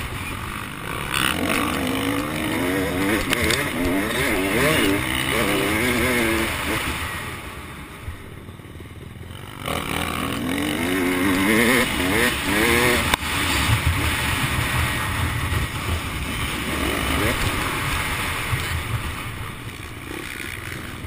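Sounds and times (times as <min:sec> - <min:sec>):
motocross bike engine revving: 0:00.0 - 0:21.0.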